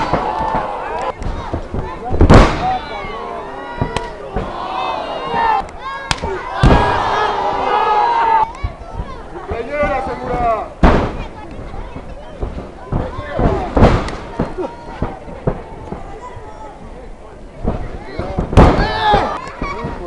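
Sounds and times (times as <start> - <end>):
voices shouting: 0.0 - 10.6, 18.7 - 20.0
sharp impacts in wrestling ring: 3.7 - 16.2, 17.6 - 20.0.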